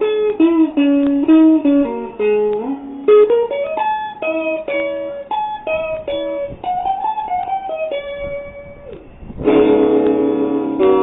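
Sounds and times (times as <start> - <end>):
electric guitar chords strummed: 0.0 - 11.0.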